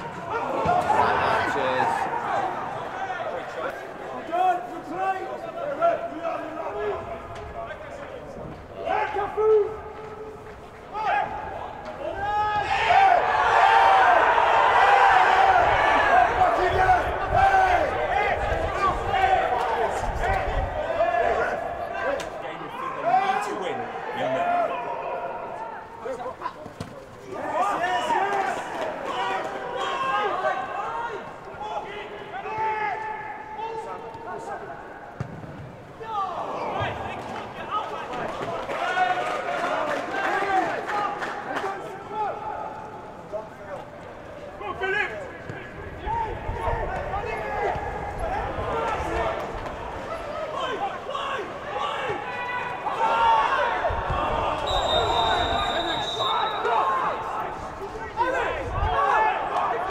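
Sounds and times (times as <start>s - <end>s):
players shouting: 0.0s - 59.9s
referee's whistle: 54.6s - 56.9s.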